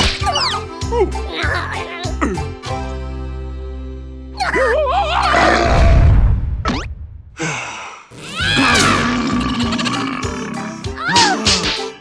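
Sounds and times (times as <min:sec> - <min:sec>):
cartoon music: 0:00.1 - 0:02.4
cartoon vocal sounds: 0:08.1 - 0:11.8.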